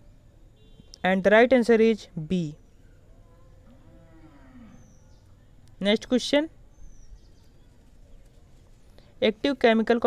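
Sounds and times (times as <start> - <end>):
faint animal call: 2.8 - 5.4.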